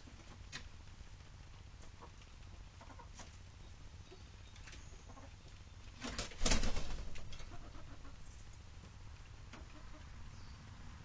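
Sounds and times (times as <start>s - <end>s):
hens clucking: 1.8s - 3.4s, 5.0s - 5.6s, 7.2s - 8.4s, 9.4s - 10.2s
wing flapping: 5.9s - 7.6s.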